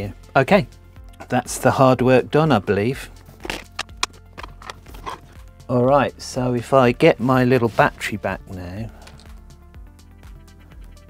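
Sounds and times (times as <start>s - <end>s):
faint background music: 0.0s - 11.0s
small tools clicking and tapping: 3.4s - 5.3s.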